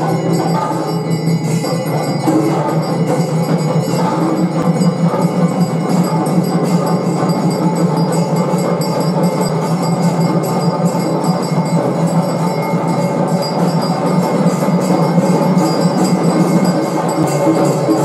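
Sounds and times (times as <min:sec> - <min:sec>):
din of temple bells: 0:00.0 - 0:18.0
hand bell rung rapidly: 0:00.0 - 0:18.0.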